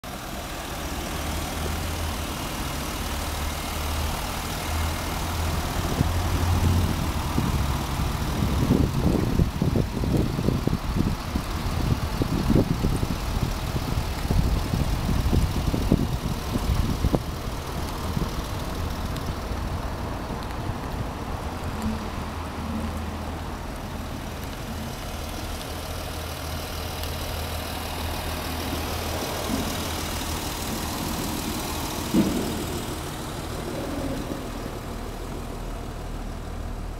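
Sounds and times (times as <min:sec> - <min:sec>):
car engine idling: 0:00.0 - 0:36.9
wind rumbling on microphone: 0:05.5 - 0:24.9.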